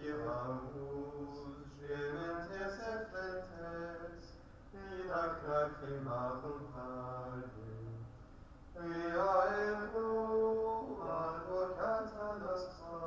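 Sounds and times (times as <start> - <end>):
slow liturgical chant: 0.0 - 13.0.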